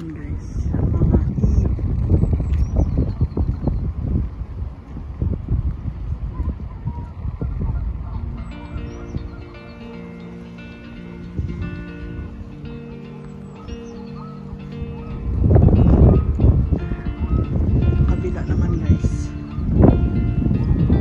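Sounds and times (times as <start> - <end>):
wind buffeting microphone: 0.0 - 21.0
background music with held notes: 7.8 - 21.0.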